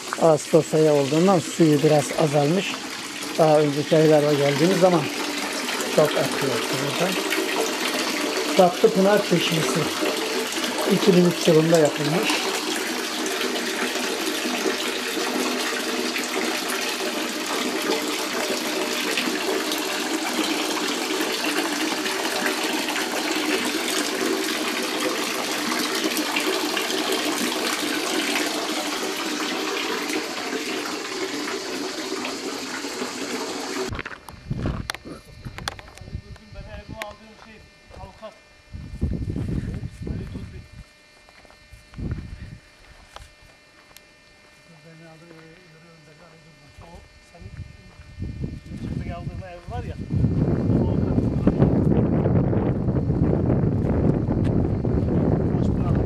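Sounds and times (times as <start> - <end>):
water splashing into basin: 1.0 - 33.9.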